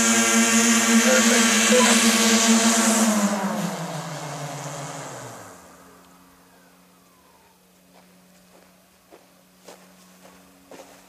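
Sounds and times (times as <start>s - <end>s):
motor drone spooling down: 0.0s - 10.8s
faint low hum: 3.7s - 11.0s.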